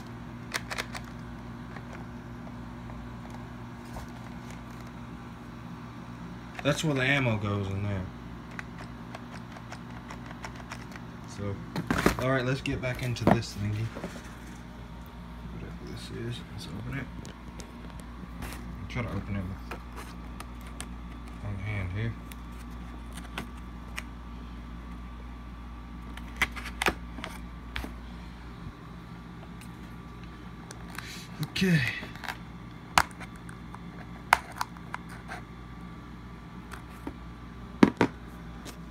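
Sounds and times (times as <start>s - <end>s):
faint steady hum: 0.0s - 38.9s.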